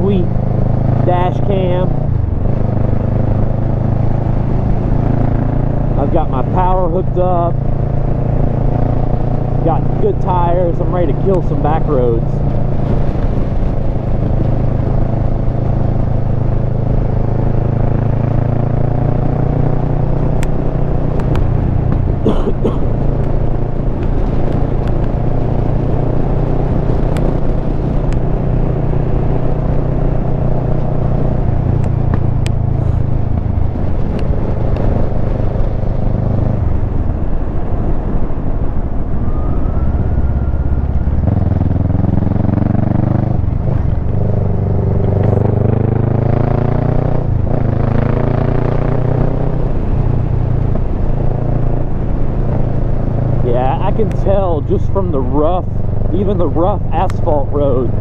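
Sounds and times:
motorcycle engine running: 0.0s - 39.0s, 40.1s - 58.0s.

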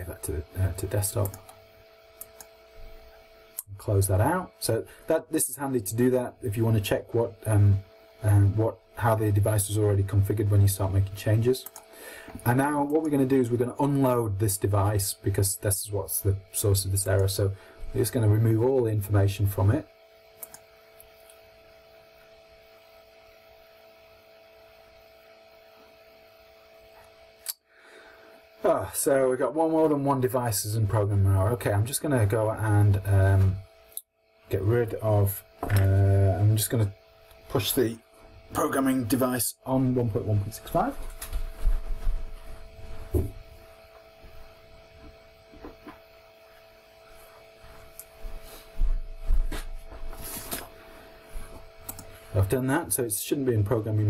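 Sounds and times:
faint electrical hum: 0.0s - 54.0s
soft thump: 43.1s - 43.4s.

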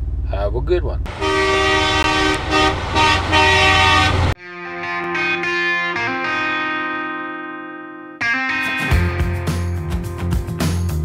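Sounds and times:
multi-tone air horn blasts: 1.1s - 4.4s.

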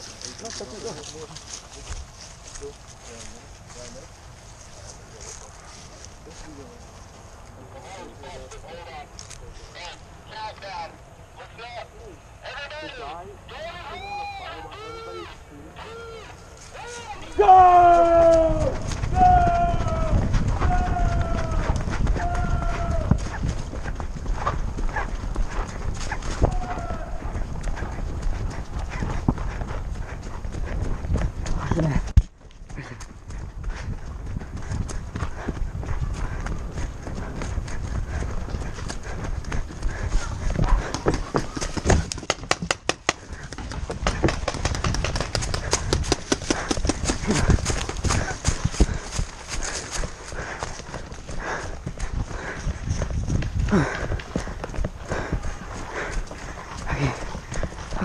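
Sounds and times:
running footsteps on dry leaves: 0.0s - 10.6s, 12.7s - 58.0s.

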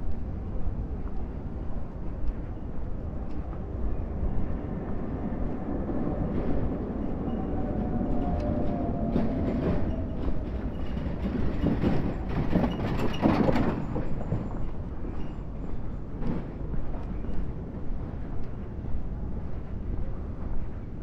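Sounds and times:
tram running past: 0.0s - 21.0s.

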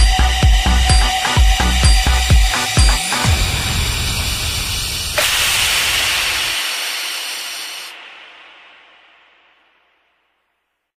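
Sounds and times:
electronic dance music: 0.0s - 3.6s
bright hissing noise: 3.7s - 10.7s.

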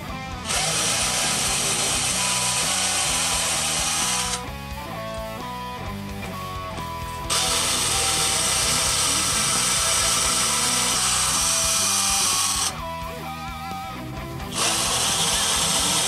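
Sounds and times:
power drill drilling into wood: 0.3s - 4.5s, 7.2s - 12.8s, 14.5s - 16.0s.

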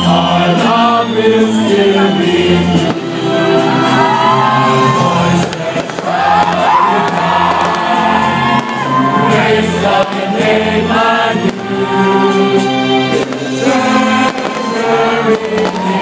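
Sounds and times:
crowd singing a hymn with music: 0.0s - 16.0s
sharp firework bangs: 5.4s - 8.8s, 13.1s - 16.0s.

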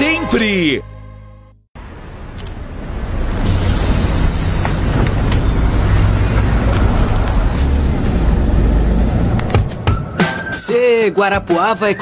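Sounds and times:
bus engine rumbling: 1.8s - 10.2s.

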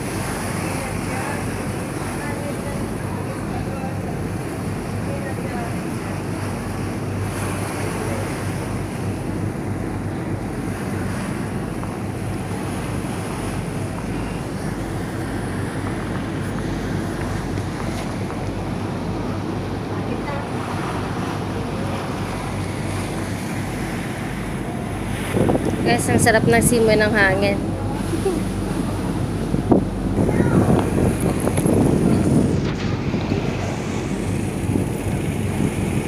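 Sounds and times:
boat engine drone: 0.0s - 36.0s
water rushing past hull: 0.0s - 36.0s
wind on microphone: 0.0s - 36.0s.

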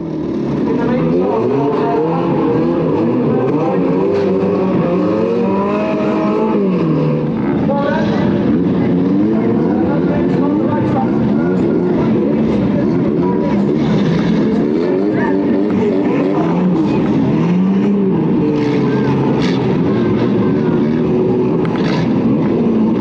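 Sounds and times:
car engines revving: 0.0s - 23.0s.

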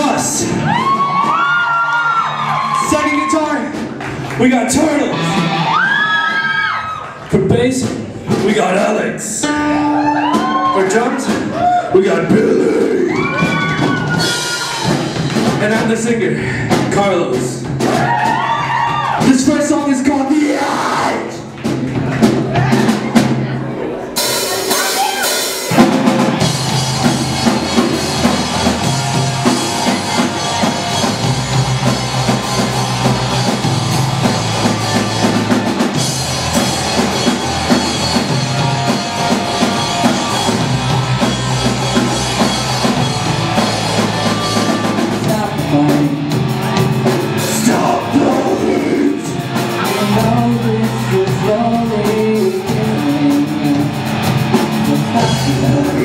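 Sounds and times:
electric guitar and bass: 0.0s - 8.5s, 20.8s - 56.0s
live rock band playing: 0.0s - 56.0s.

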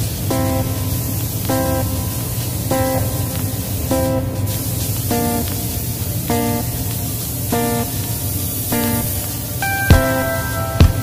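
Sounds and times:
plucked guitar chords: 0.0s - 4.5s, 7.5s - 8.1s, 8.7s - 11.0s
spray gun air hiss: 0.0s - 11.0s.

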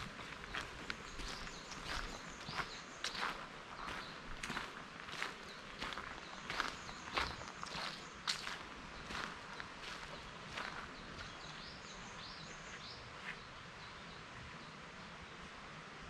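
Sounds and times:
footsteps on gravel: 0.0s - 11.7s.

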